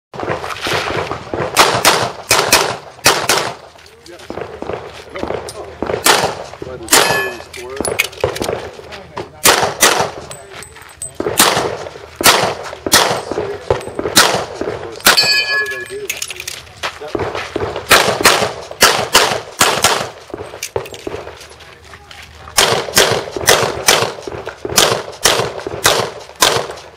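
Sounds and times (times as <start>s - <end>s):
pistol shots: 0.2s - 3.7s, 4.3s - 8.7s, 9.4s - 10.3s, 11.2s - 16.0s, 17.1s - 21.3s, 22.6s - 26.9s.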